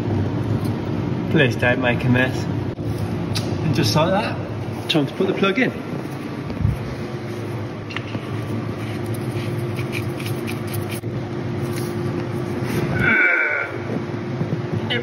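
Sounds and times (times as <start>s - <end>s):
space heater humming: 0.0s - 15.0s.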